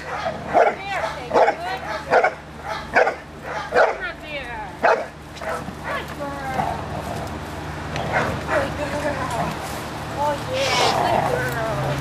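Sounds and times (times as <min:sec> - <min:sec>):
dog barking: 0:00.0 - 0:04.0, 0:04.8 - 0:06.1.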